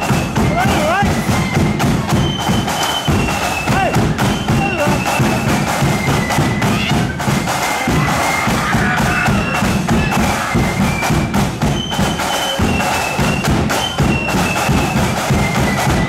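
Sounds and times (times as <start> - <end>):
bass and side drums beat: 0.0 - 16.0
flutes playing melody: 0.0 - 16.0.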